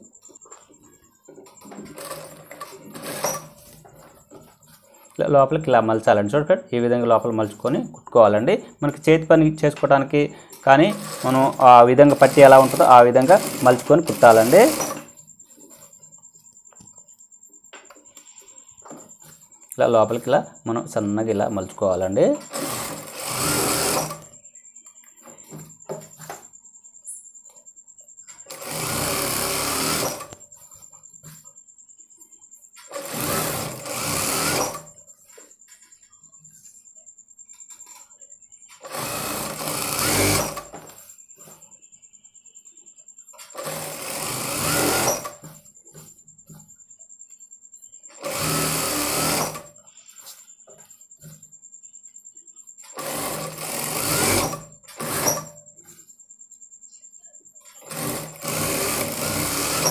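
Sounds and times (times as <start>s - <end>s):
sewing machine running: 1.6s - 3.5s, 10.6s - 15.1s, 22.4s - 24.3s, 28.5s - 30.4s, 32.9s - 34.9s, 38.8s - 40.8s, 43.5s - 45.4s, 48.1s - 49.7s, 52.9s - 55.5s, 57.8s - 59.9s.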